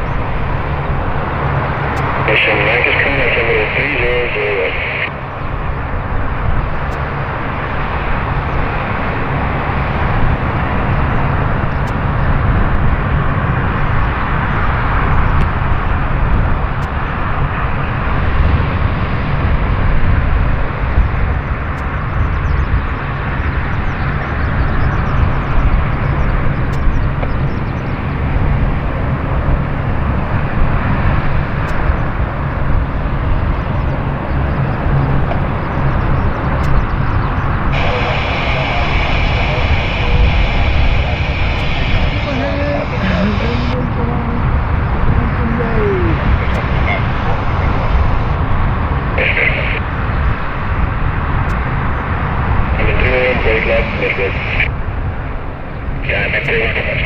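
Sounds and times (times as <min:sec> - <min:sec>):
turboprop engines droning: 0:00.0 - 0:57.0.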